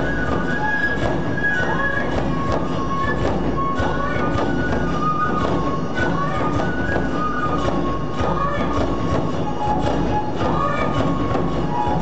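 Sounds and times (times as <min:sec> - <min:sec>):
bamboo flutes playing a melody: 0:00.0 - 0:12.0
large taiko drum beats: 0:00.0 - 0:12.0.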